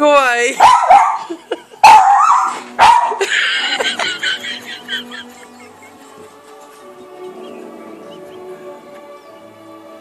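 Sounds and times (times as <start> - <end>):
small dog barking: 0.6 - 1.2, 1.8 - 3.2.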